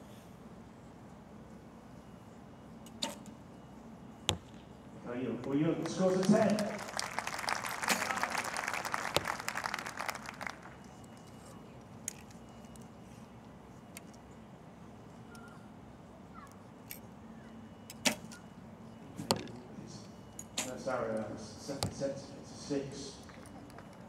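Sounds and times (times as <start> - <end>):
spectators applauding: 5.8 - 10.9.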